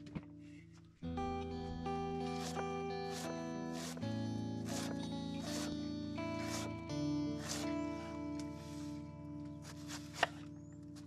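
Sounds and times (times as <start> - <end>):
background guitar music: 0.0 - 11.0.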